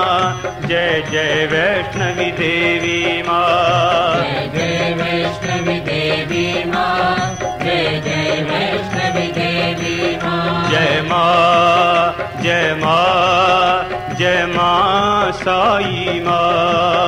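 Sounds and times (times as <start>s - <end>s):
devotional music: 0.0s - 17.0s.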